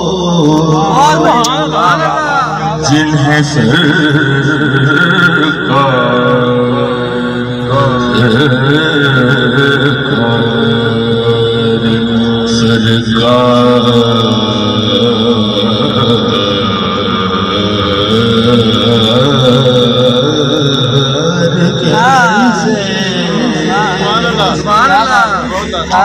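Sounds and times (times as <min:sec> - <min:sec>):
man singing into microphone: 0:00.0 - 0:26.0.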